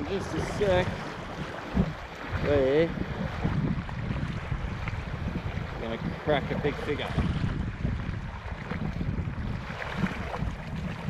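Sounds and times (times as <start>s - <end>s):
sea water splashing: 0.0s - 11.0s
wind buffeting microphone: 0.0s - 11.0s.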